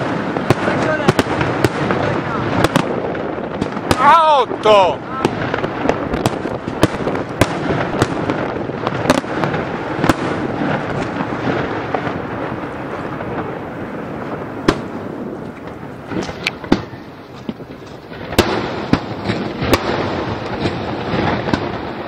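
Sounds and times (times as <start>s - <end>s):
continuous noisy wash: 0.0s - 5.4s
fireworks bangs: 0.0s - 22.0s.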